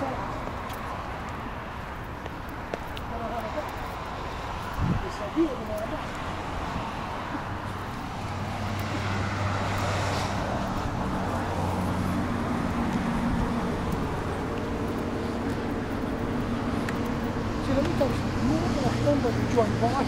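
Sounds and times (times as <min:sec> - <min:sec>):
road traffic: 0:00.0 - 0:20.0.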